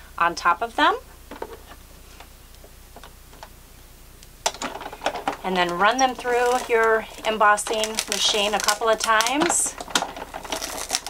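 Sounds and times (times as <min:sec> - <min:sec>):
plastic and metal plates clicking: 0:04.5 - 0:11.0.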